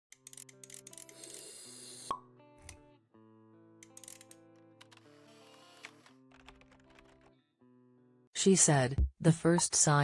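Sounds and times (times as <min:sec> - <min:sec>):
soft background music: 0:00.1 - 0:10.0.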